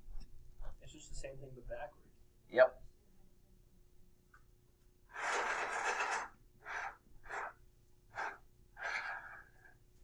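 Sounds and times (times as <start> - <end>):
marker scratching on whiteboard: 5.1 - 9.7.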